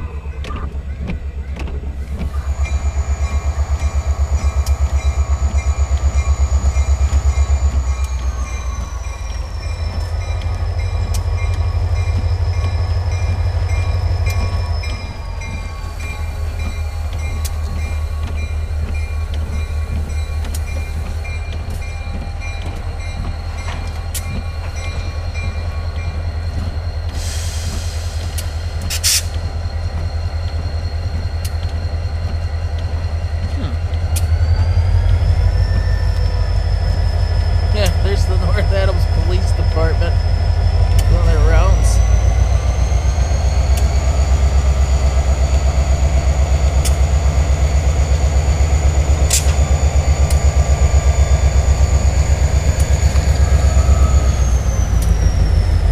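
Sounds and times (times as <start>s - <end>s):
diesel locomotive engine rumble: 0.0s - 55.9s.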